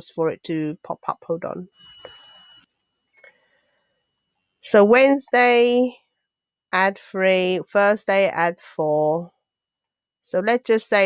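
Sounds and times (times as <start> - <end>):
thin high whine: 1.6 - 3.3.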